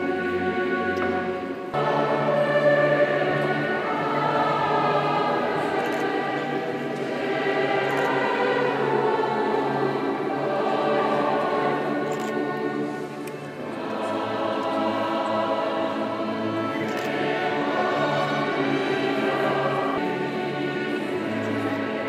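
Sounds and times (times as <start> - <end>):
choir singing a hymn: 0.0 - 22.0.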